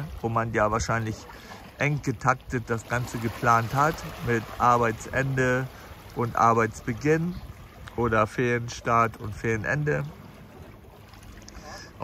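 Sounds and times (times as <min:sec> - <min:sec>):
waves lapping on rocks: 0:00.0 - 0:12.0.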